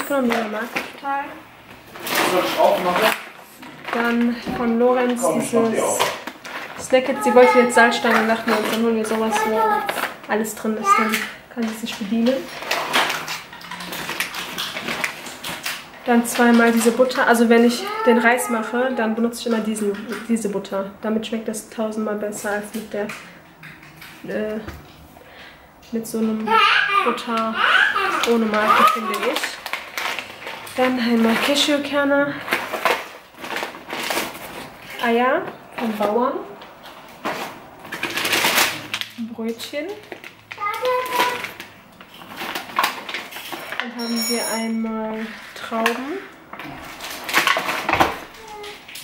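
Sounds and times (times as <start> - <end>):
plastic bag rustling and crinkling: 0.0 - 20.7, 26.3 - 49.0.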